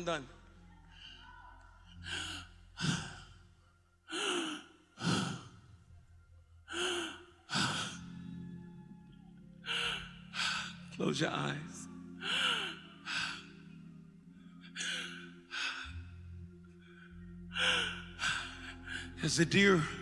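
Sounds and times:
man breathing heavily: 0:00.9 - 0:03.4, 0:04.1 - 0:05.9, 0:06.7 - 0:08.3, 0:09.6 - 0:10.9, 0:12.2 - 0:13.7, 0:14.7 - 0:16.2, 0:16.8 - 0:19.2.

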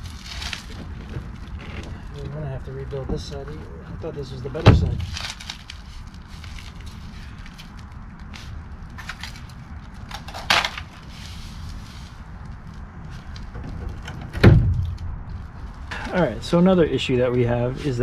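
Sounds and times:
low steady rumble: 0:00.0 - 0:18.0
heavy thump: 0:04.6 - 0:05.2, 0:13.5 - 0:16.1.

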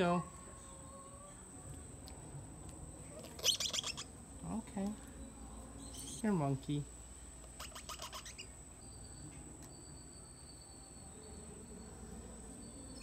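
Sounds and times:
high insect tone: 0:02.8 - 0:13.0
bird chirps: 0:03.2 - 0:04.1, 0:07.6 - 0:13.0.

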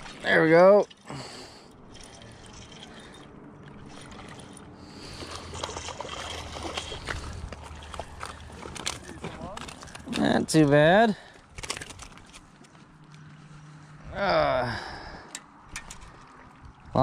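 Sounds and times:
water at shore: 0:00.0 - 0:17.0.

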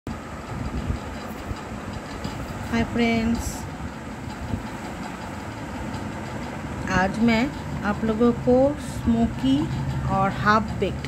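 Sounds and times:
low background rumble: 0:00.1 - 0:11.0.

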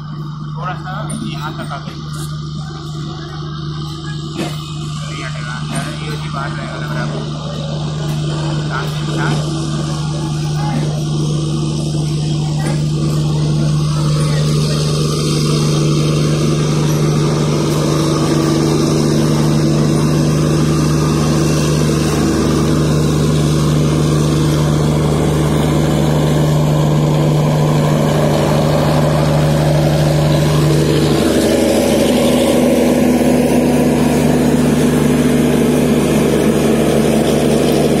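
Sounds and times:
generator hum: 0:00.0 - 0:38.0
train wheels rumbling on rails: 0:00.0 - 0:38.0.

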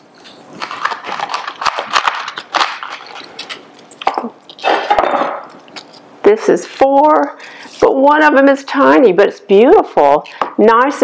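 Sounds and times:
knife crunching through celery: 0:00.2 - 0:04.8, 0:05.4 - 0:06.1.

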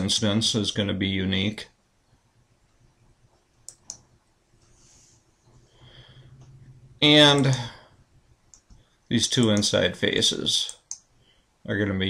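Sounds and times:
computer mouse clicks: 0:03.6 - 0:04.7, 0:10.7 - 0:11.1.

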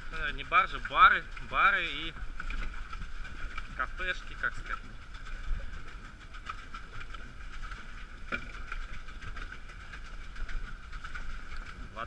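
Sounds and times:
water churning and lapping: 0:00.0 - 0:12.0
wind rumbling on microphone: 0:00.0 - 0:12.0.

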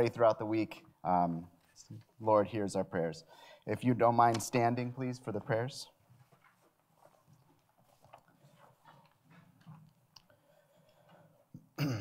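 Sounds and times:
congregation rustling and shuffling: 0:00.0 - 0:11.6.

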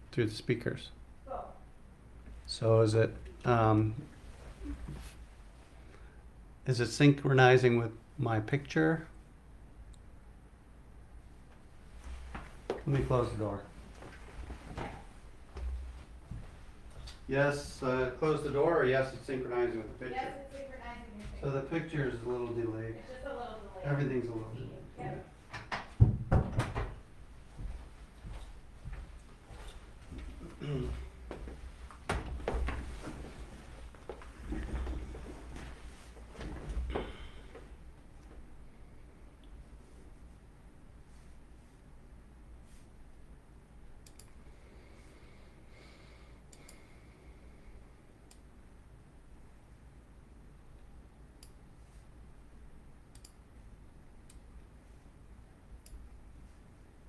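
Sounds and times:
steady low hum: 0:00.0 - 0:57.0
faint shuffling: 0:03.4 - 0:06.1, 0:11.5 - 0:25.4, 0:27.4 - 0:38.5
knocks and thumps: 0:25.5 - 0:27.0
faint sharp clicks: 0:44.0 - 0:44.4, 0:53.1 - 0:53.4.

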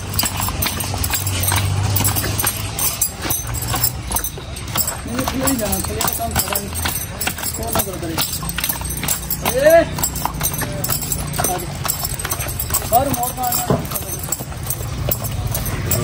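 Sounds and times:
horse hooves clopping on dirt: 0:00.0 - 0:16.0.

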